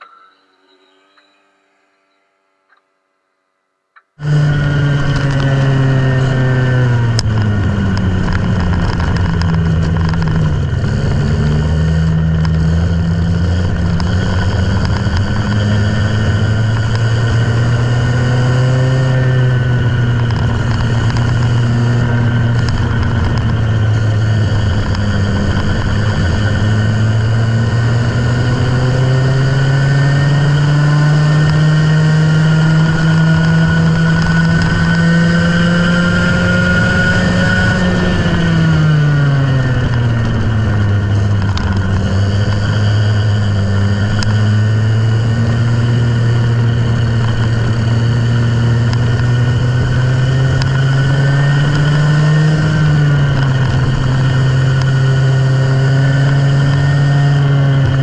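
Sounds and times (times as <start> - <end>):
go-kart engine: 4.2 - 58.0.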